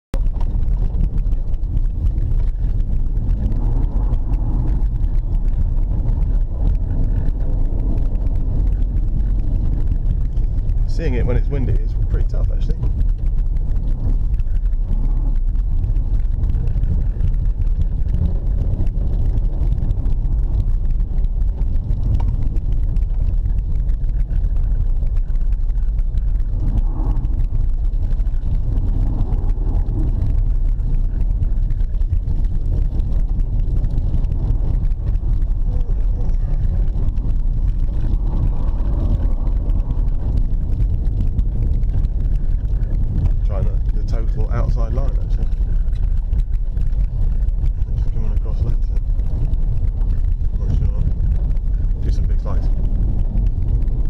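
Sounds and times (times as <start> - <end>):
engine and tyres rumbling: 0.0 - 54.0.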